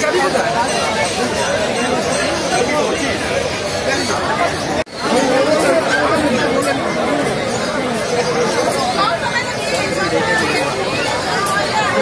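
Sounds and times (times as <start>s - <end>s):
murmur of overlapping voices: 0.0s - 12.0s.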